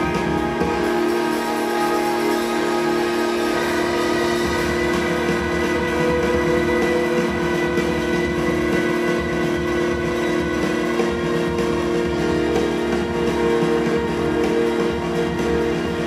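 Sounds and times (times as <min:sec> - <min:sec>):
sustained string notes: 0:00.0 - 0:16.0.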